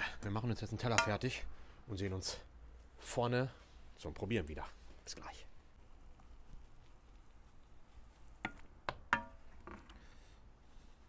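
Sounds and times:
wooden spoon knocking on ceramic: 0:08.5 - 0:09.4.

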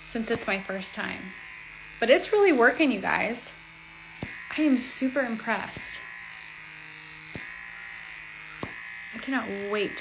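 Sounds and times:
vacuum motor whining: 0:00.0 - 0:10.0.

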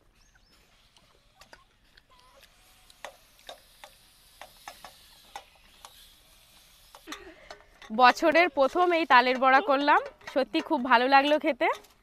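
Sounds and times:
hens pecking and scratching ground: 0:00.0 - 0:12.0.

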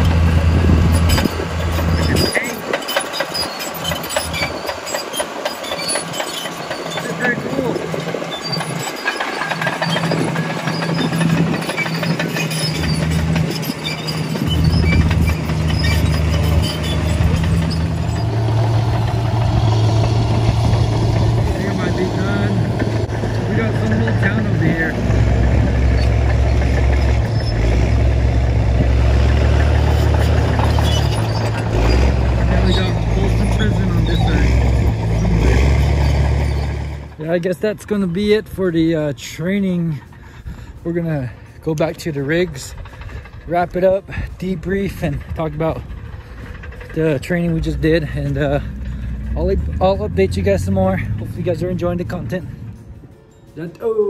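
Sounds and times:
bulldozer diesel engine running: 0:00.0 - 0:54.0
steel tracks clattering: 0:01.0 - 0:53.6.

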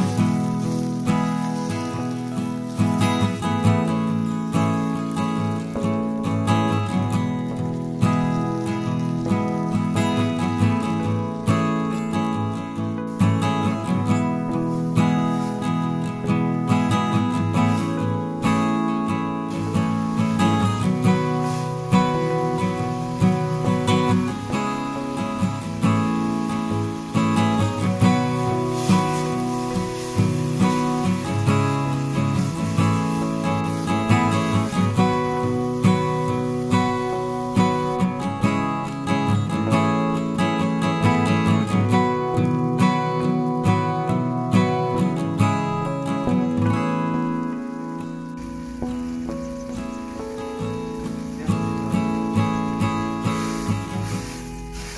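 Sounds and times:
acoustic guitar music: 0:00.0 - 0:54.9.

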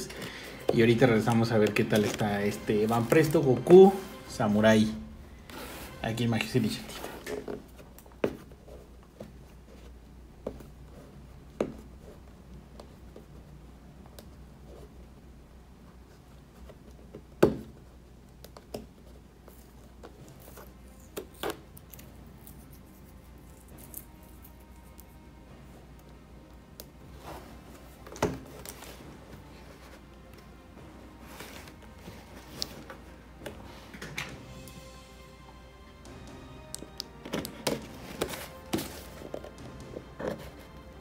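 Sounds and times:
quiet background music: 0:00.0 - 0:41.0
packing tape crackling: 0:18.3 - 0:25.2
cardboard box rustling: 0:37.3 - 0:40.7.

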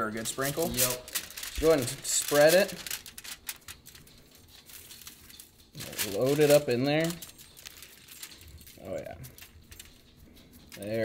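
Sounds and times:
aluminium foil crinkling: 0:00.0 - 0:11.0
hand rubbing fish: 0:00.0 - 0:11.0.

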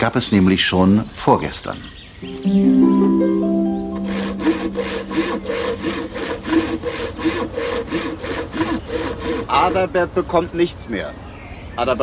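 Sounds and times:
harp-like chord: 0:02.2 - 0:06.6
hand saw cutting wood: 0:04.1 - 0:10.0.

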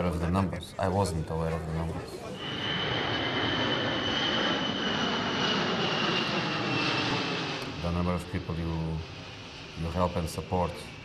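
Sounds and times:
aircraft engines overhead: 0:00.0 - 0:11.0
high engine whine: 0:02.1 - 0:11.0.

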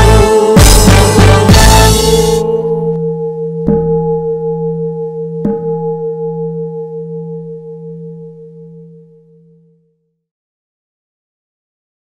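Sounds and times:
metal bowl bell ringing: 0:02.4 - 0:10.2.

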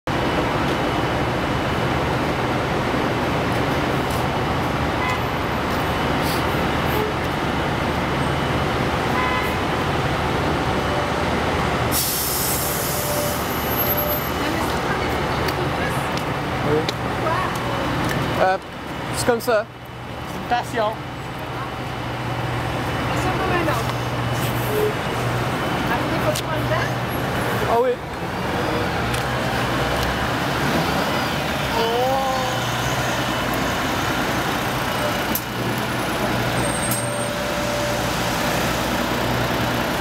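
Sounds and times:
bus diesel engine passing: 0:00.1 - 0:40.0
air hissing: 0:11.9 - 0:13.5.

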